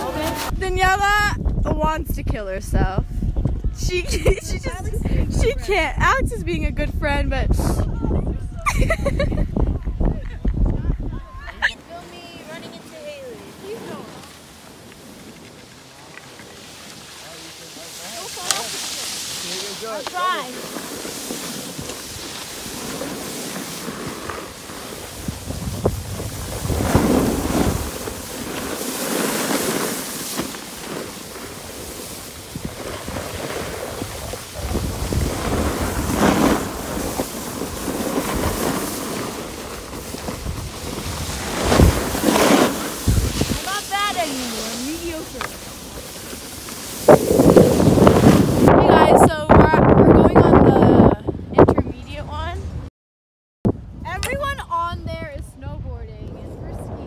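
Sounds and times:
skis scraping over packed snow: 0.0s - 0.6s, 11.8s - 49.0s
wind buffeting microphone: 0.0s - 14.2s, 19.5s - 30.3s, 31.1s - 39.0s, 39.6s - 52.9s, 53.7s - 57.0s.

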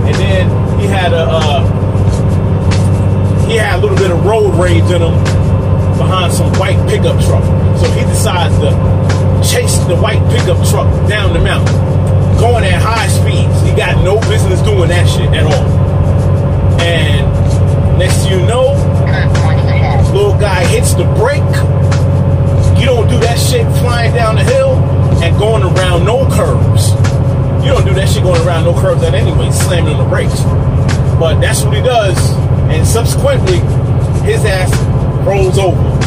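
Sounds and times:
background music: 0.0s - 36.0s
truck diesel engine droning: 0.0s - 36.0s
person speaking: 19.1s - 21.6s.

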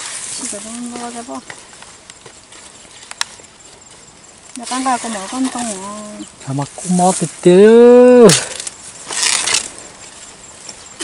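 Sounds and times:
leaves rustling: 0.0s - 11.0s.

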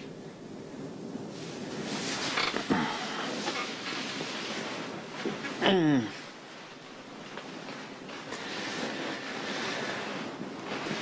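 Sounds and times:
man groaning in pain: 5.6s - 6.2s.

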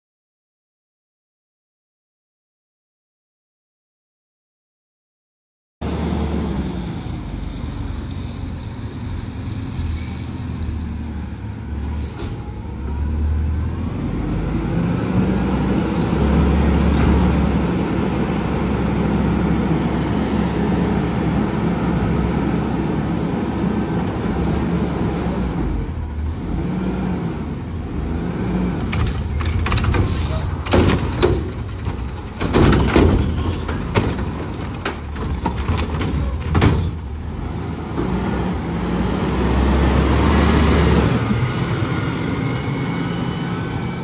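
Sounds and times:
garbage truck engine revving: 13.0s - 44.0s.

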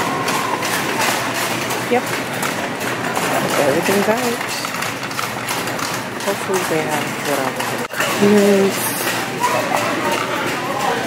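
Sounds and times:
shopping cart rattling: 0.0s - 11.0s
voices in store: 0.0s - 11.0s.

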